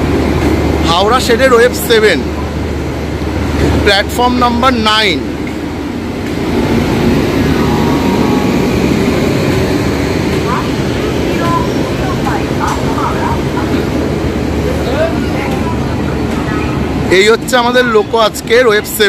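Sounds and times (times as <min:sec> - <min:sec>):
low rumble of trains: 0:00.0 - 0:19.0
distant voices: 0:00.6 - 0:19.0.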